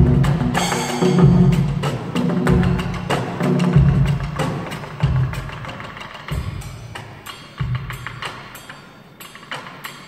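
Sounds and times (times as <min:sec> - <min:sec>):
deep drum strokes: 0:00.0 - 0:06.8.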